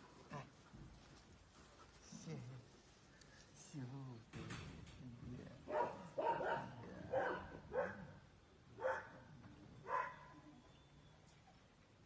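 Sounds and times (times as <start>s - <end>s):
large dog barking: 5.7s - 8.2s, 8.8s - 9.2s, 9.9s - 10.2s.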